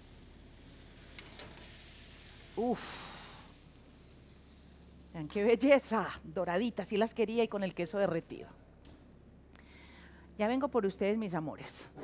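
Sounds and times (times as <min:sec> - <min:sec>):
low electrical hum: 0:00.0 - 0:12.0
breathy exhale: 0:02.8 - 0:03.5, 0:09.6 - 0:10.3.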